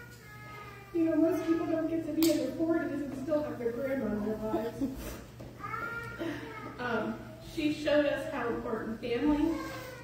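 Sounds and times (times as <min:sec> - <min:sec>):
woman speaking into a microphone: 0:01.0 - 0:04.9, 0:06.8 - 0:09.6.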